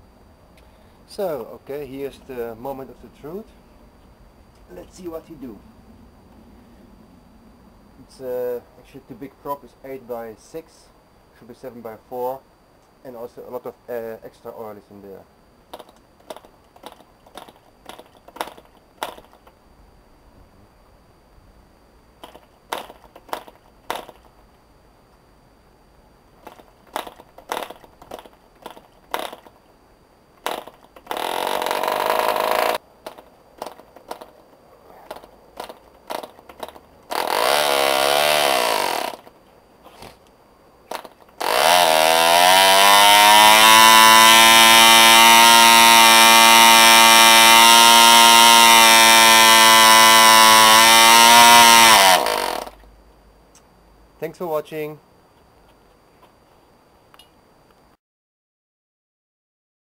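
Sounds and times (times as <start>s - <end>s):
small model engine running: 30.5s - 32.8s, 36.6s - 39.3s, 41.4s - 52.8s.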